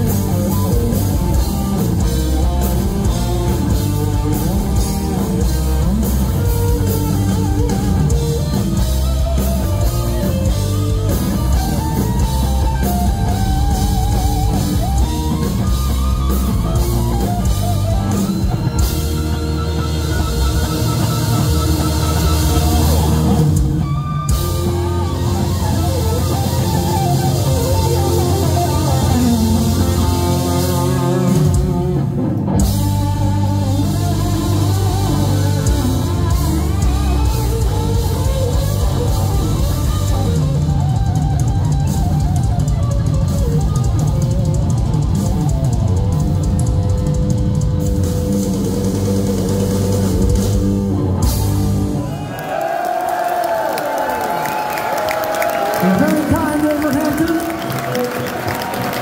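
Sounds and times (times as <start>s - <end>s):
electric guitar lead with bends: 0.0s - 52.1s
heavy rock band playing: 0.0s - 59.0s.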